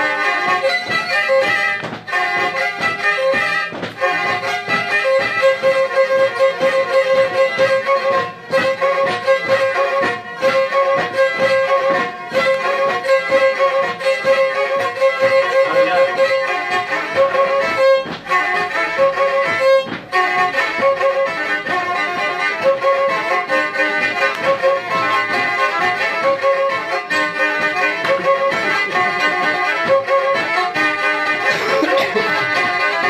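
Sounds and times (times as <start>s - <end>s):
bowed fiddle folk tune: 0.0s - 33.0s.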